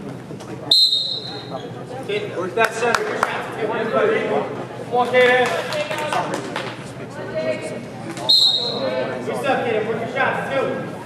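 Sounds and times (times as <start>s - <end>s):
voices in a gym: 0.0s - 11.0s
referee's whistle blast: 0.7s - 1.5s, 8.3s - 8.8s.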